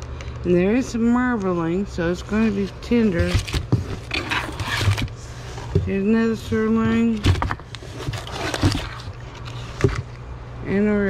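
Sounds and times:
cardboard rustling: 2.2s - 10.2s
plastic crinkling: 7.1s - 10.2s.

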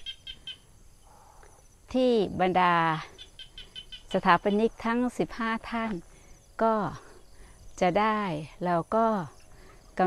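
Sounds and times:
insects trilling: 0.0s - 10.0s
woman speaking: 1.9s - 3.2s, 4.1s - 6.0s, 6.6s - 7.1s, 7.8s - 9.4s.

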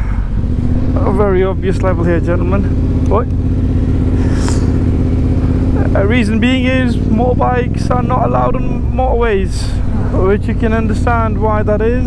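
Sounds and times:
motorcycle engine running low: 0.0s - 12.0s.

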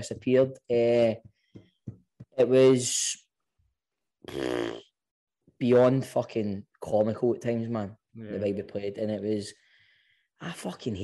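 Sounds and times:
man speaking: 5.6s - 9.6s.

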